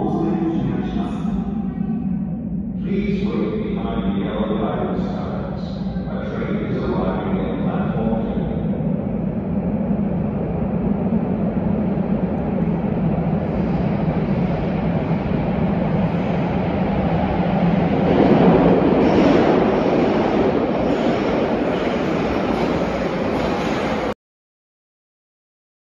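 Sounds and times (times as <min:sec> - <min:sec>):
train wheels rumbling on rail: 0:00.0 - 0:24.2.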